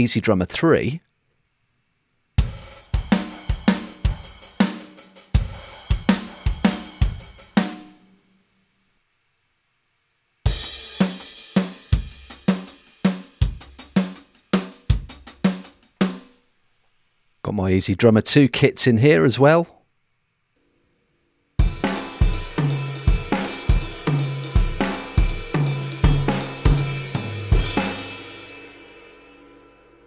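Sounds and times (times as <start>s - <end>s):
drum kit groove: 2.4s - 8.0s, 10.5s - 16.4s, 21.6s - 30.0s.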